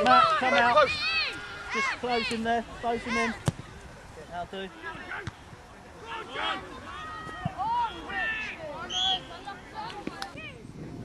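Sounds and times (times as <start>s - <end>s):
people shouting and calling: 0.0s - 3.8s, 4.6s - 10.6s.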